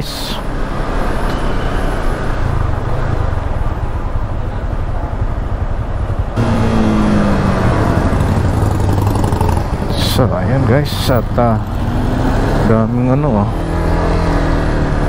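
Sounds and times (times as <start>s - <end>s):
motorcycle engine rumbling: 0.0s - 15.0s.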